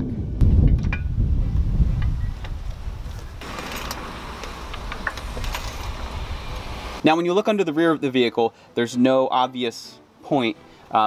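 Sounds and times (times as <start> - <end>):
wind buffeting microphone: 0.0 - 7.0.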